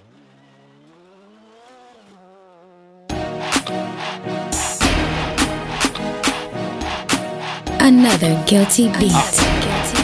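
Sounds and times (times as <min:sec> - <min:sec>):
car engine approaching: 0:00.0 - 0:10.0.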